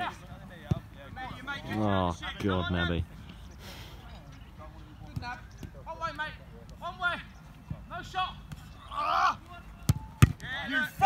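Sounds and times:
faint shouts of players: 7.9 - 11.0.

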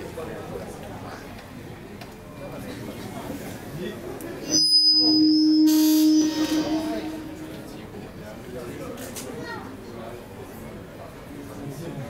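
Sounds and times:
feedback high whistle: 4.4 - 7.8
microphone feedback low tone: 4.4 - 7.9.

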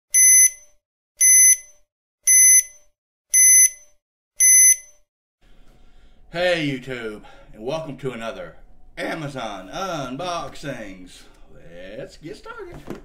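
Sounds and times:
short electronic beeps: 0.1 - 5.0.

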